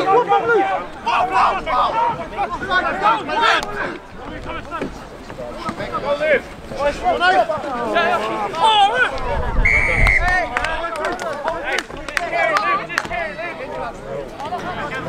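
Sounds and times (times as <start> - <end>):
voices shouting and calling: 0.0 - 15.0
referee's whistle blast: 9.6 - 10.3.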